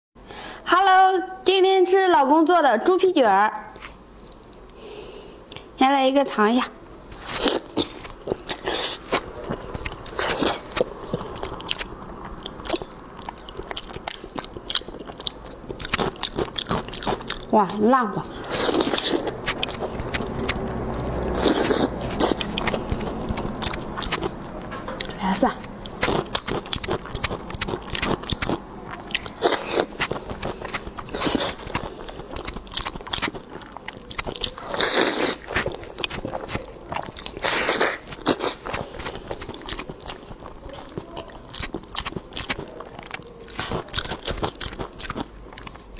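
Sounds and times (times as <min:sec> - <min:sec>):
person chewing soft food: 0:03.8 - 0:05.8, 0:06.9 - 0:45.9
mouth clicks and squelches: 0:04.1 - 0:04.8, 0:06.9 - 0:45.9.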